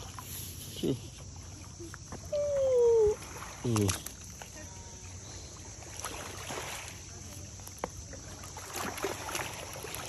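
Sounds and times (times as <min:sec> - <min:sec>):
river water on stony shore: 0:00.0 - 0:10.0.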